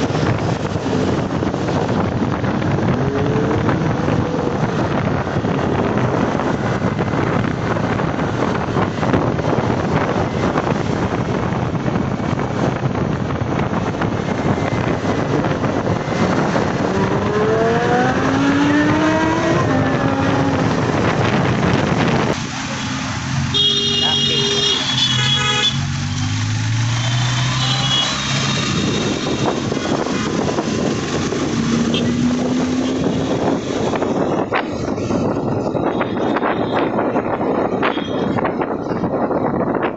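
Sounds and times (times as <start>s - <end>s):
vehicle engine accelerating: 0.0s - 23.5s, 25.8s - 36.0s
roadside traffic noise: 0.0s - 39.9s
people talking: 23.9s - 25.0s.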